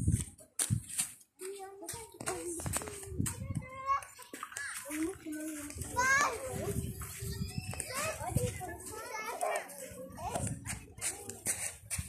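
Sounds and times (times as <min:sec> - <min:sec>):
young children calling and chattering: 0:00.0 - 0:12.0.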